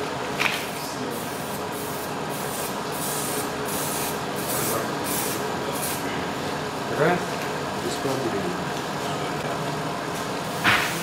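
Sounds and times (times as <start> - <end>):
spray paint can hissing: 1.3 - 6.0.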